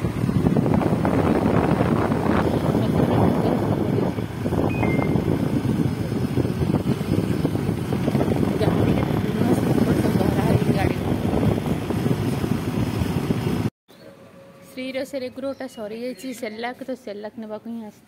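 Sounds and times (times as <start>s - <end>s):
wind buffeting microphone: 0.0s - 13.7s
motorcycle engine: 0.0s - 14.7s
road noise: 0.0s - 18.0s.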